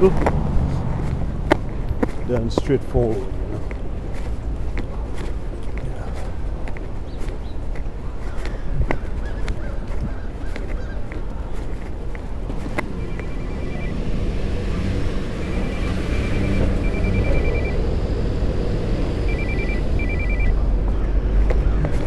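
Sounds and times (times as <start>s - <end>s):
city traffic rumbling: 0.0s - 22.0s
rapid high electronic beeping: 12.9s - 21.3s.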